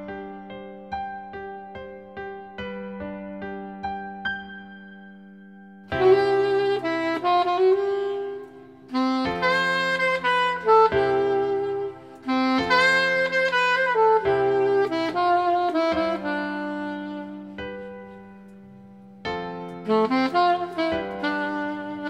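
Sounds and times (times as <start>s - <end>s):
alto saxophone melody: 0.0s - 4.8s, 5.8s - 22.0s.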